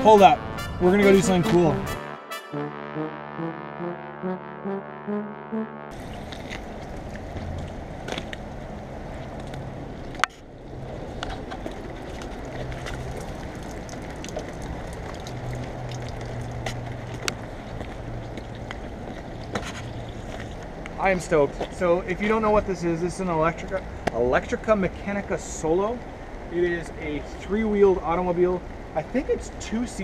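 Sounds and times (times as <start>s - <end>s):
brass-heavy music: 0.0s - 6.0s
steady outdoor rush: 0.0s - 30.0s.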